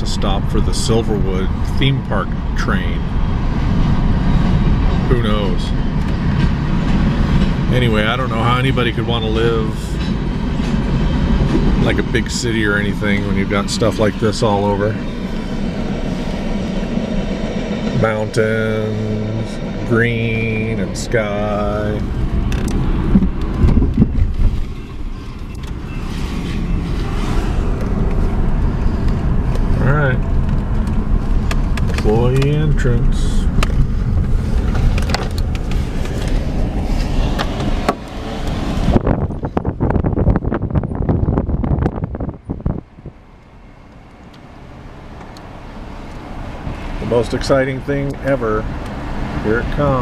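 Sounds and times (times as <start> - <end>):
car cabin road rumble: 0.0 - 50.0.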